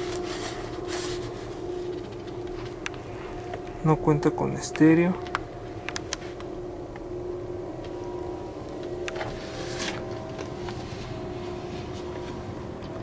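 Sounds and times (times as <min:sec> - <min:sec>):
mechanical hum: 0:00.0 - 0:13.0.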